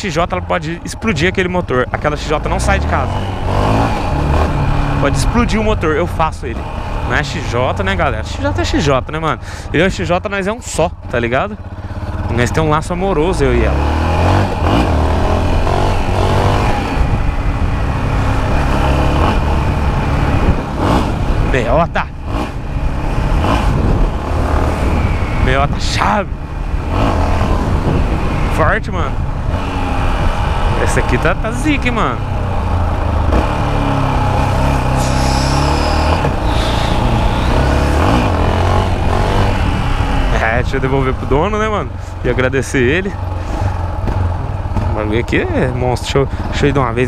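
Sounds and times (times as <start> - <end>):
low rumble of riding noise: 0.0 - 47.0
motorcycle engine cruising: 0.0 - 47.0
motorcycle engine thumping at low revs: 36.0 - 40.3, 43.2 - 45.0.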